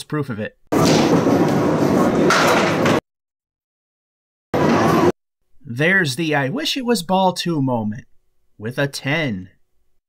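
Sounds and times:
clatter of bowling pins: 0.8 - 3.0.

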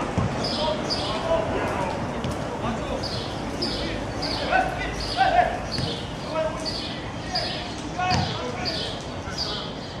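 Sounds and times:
birds chirping: 0.2 - 1.4, 2.6 - 10.0
players shouting: 3.6 - 9.7.

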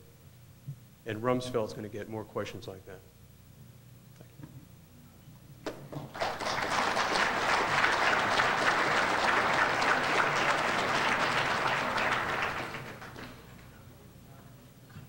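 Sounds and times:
audience applauding: 6.0 - 13.8.

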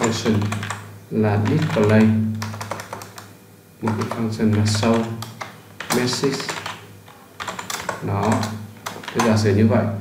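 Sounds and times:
computer keyboard typing: 0.0 - 9.5.

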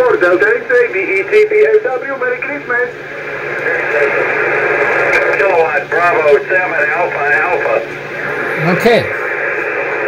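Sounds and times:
radio band noise hiss: 0.0 - 10.0
faint broken radio voice: 8.3 - 9.2.

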